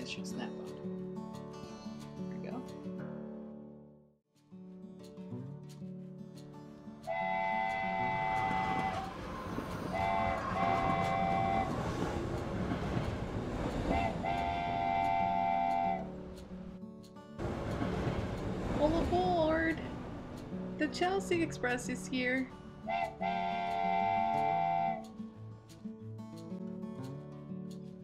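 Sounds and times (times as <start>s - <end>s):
background music: 4.6s - 28.0s
train whistle: 7.1s - 12.4s, 13.7s - 16.4s, 22.8s - 25.2s.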